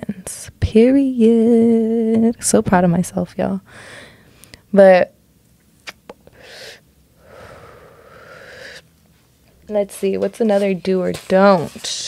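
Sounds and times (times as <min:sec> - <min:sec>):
woman inhaling smoke: 0:06.3 - 0:08.9.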